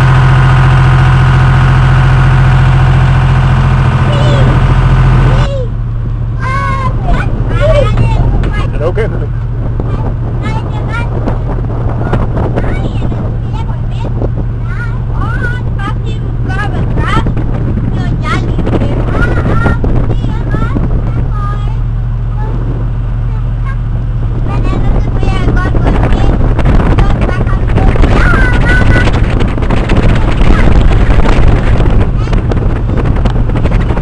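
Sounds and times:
boat engine droning: 0.0 - 34.0
wind noise on microphone: 0.0 - 34.0
people talking: 4.0 - 4.6, 5.3 - 5.7, 6.4 - 11.4, 12.0 - 17.3, 17.9 - 21.8, 22.4 - 22.7, 24.5 - 29.2, 30.1 - 30.8.

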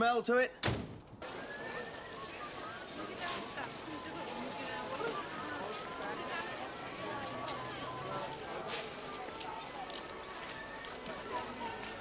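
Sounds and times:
outdoor background hubbub: 0.0 - 12.0
faint distant voices: 1.2 - 12.0.

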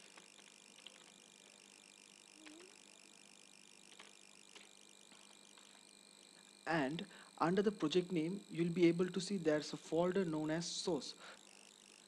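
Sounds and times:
faint steady hiss: 0.0 - 11.7.

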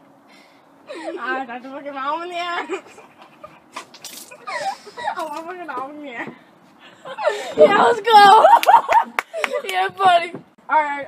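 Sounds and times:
high squealing laugh: 2.6 - 5.3.

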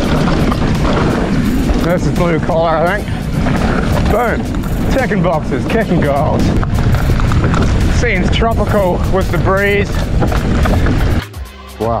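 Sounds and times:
tyres rolling on dirt: 0.0 - 11.2
wind rushing over microphone: 0.0 - 11.2
background music: 0.0 - 12.0.

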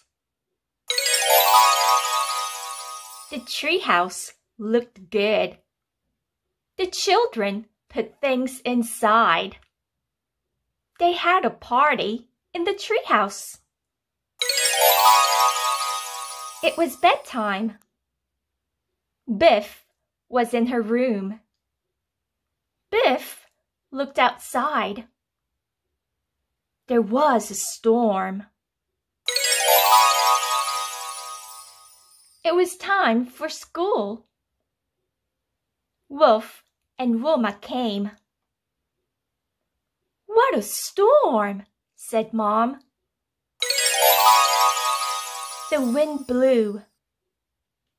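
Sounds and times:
bright electronic chime: 0.9 - 3.5, 14.4 - 17.2, 29.3 - 32.3, 43.6 - 46.4
woman speaking: 3.3 - 5.6, 16.6 - 17.8, 45.6 - 46.8.

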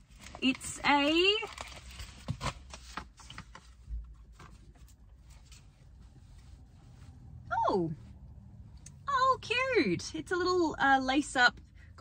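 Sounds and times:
fabric and packaging rustling: 0.0 - 7.4.

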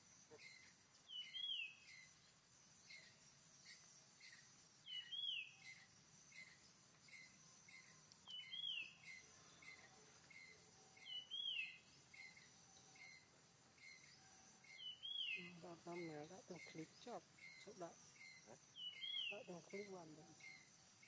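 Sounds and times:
bird chirps: 0.0 - 21.0
high insect drone: 0.0 - 21.0.

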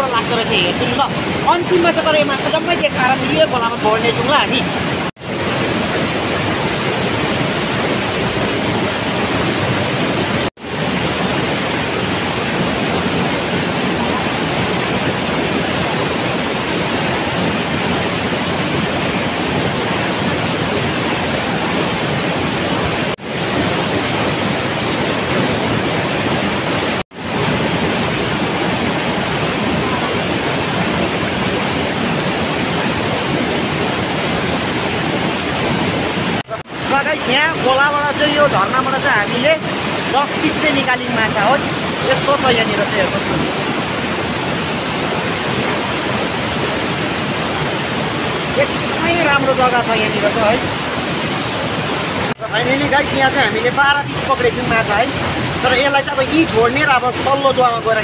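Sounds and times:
waterfall crashing into pool: 0.0 - 58.0.

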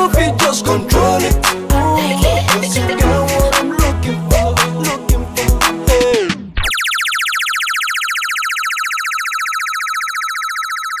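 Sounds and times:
pulsing electronic tone: 6.6 - 11.0.

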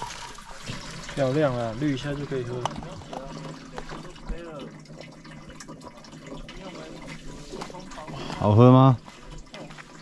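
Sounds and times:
water trickling: 0.0 - 10.0.

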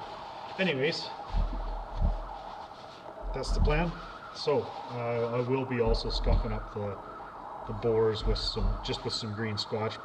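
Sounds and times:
hands wiped on towel: 0.0 - 6.7.

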